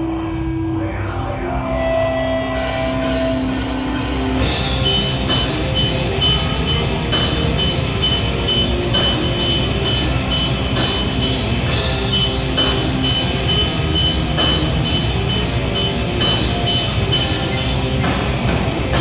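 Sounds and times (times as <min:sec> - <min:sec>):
electric guitar: 0:00.0 - 0:19.0
drum kit beat: 0:02.6 - 0:19.0.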